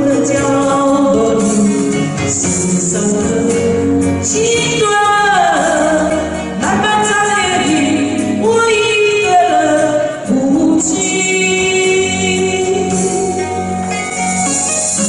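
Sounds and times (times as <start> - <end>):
woman singing a ballad: 0.0 - 14.0
backing music: 0.0 - 15.0.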